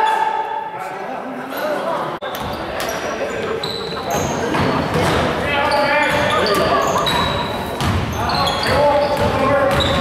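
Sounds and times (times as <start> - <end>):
voices echoing: 0.0 - 10.0
sneakers squeaking: 1.6 - 10.0
basketball bouncing on wooden floor: 6.1 - 8.1.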